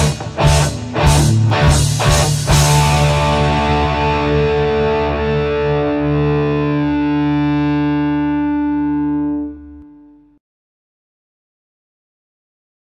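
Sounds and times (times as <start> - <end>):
distorted electric guitar chord: 0.0 - 10.4.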